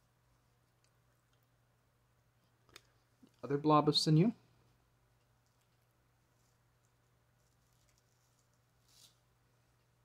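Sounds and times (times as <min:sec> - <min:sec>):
low steady hum: 0:00.0 - 0:10.0
soft rustle: 0:04.5 - 0:10.0.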